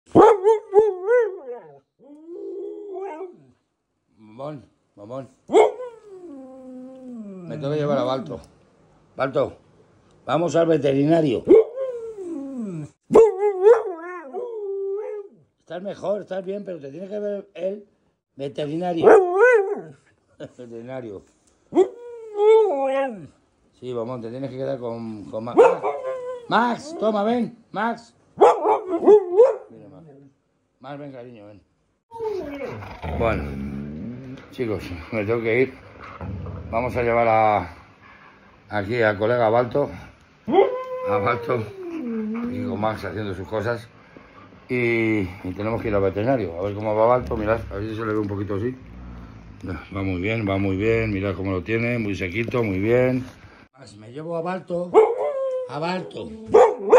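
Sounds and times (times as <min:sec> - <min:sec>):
dog howling: 0:00.2 - 0:03.6, 0:05.5 - 0:07.8, 0:11.5 - 0:15.4, 0:18.9 - 0:20.0, 0:21.7 - 0:23.4, 0:25.6 - 0:27.2, 0:28.5 - 0:30.2, 0:40.5 - 0:42.8, 0:54.9 - 0:56.9.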